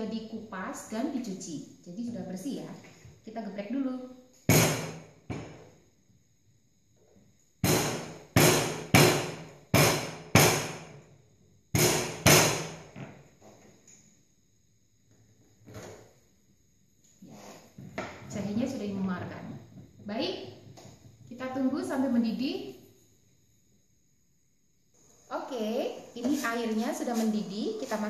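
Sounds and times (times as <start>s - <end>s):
pestle thudding on wooden board: 4.5s - 5.6s, 7.6s - 11.0s, 11.7s - 13.2s.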